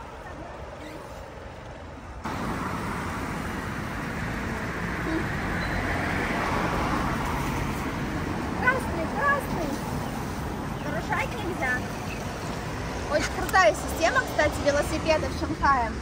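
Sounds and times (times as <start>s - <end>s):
road traffic on wet street: 0.0s - 16.0s.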